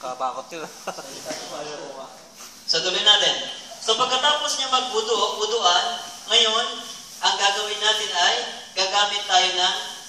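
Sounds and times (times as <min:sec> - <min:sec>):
man speaking: 0:00.0 - 0:10.0
steady hiss: 0:00.0 - 0:10.0.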